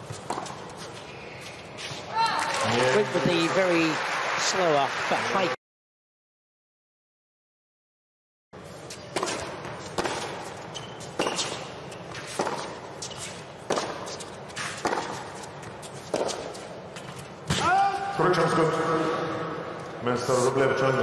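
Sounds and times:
tennis ball struck by racquets: 0.0s - 0.6s, 9.0s - 17.7s.

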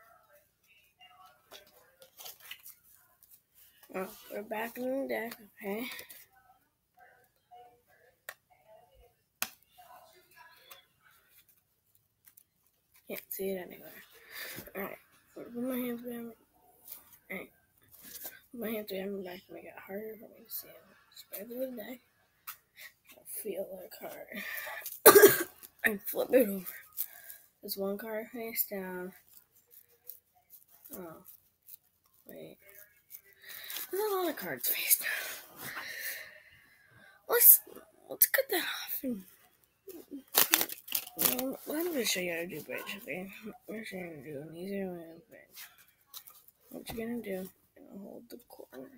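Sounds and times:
playing cards shuffled by hand: 1.5s - 3.4s, 40.2s - 42.0s.

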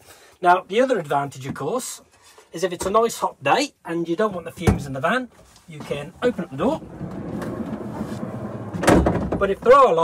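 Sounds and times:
sliding door rolling open: 6.4s - 9.4s
door clunk: 8.6s - 9.5s.

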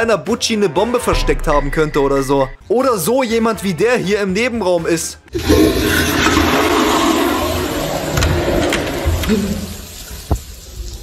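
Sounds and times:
toilet flushing: 5.3s - 11.0s.

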